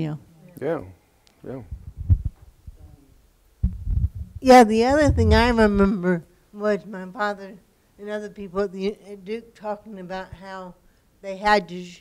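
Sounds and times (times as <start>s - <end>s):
microphone handling thumps: 1.6s - 2.8s, 3.6s - 6.0s.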